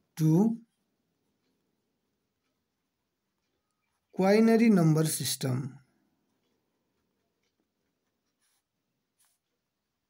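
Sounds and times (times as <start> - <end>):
pen scratching on paper: 8.0 - 9.5.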